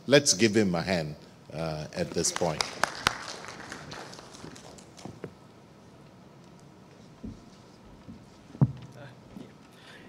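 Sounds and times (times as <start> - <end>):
light applause: 2.2 - 5.2.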